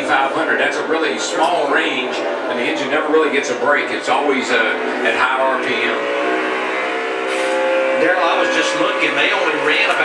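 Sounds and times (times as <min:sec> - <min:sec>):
race car engines high pitch: 0:00.0 - 0:10.0.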